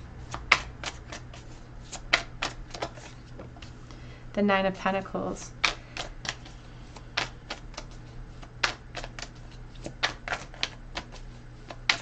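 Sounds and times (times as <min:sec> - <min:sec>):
cards clicking and tapping: 0:00.3 - 0:03.8, 0:05.6 - 0:12.0.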